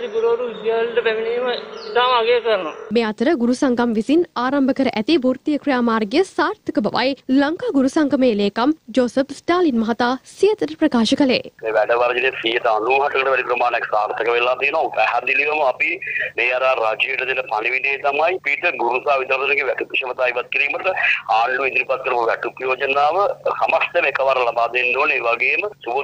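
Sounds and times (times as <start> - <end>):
man speaking over telephone: 0.0 - 2.9, 11.6 - 26.0.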